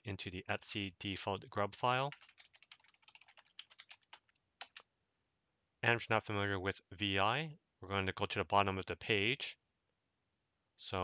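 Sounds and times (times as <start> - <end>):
computer keyboard typing: 2.1 - 4.8.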